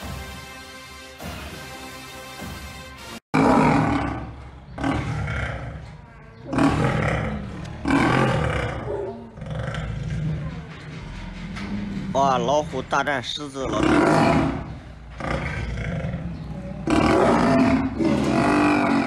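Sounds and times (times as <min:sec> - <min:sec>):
tiger roaring: 0:03.4 - 0:10.5, 0:13.6 - 0:19.0.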